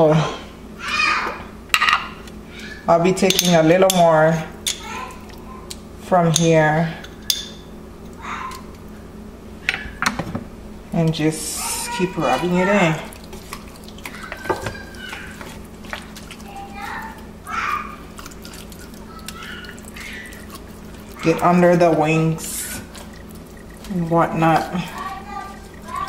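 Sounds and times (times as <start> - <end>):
wet squishing and slapping: 8.0 - 9.0, 11.0 - 26.0.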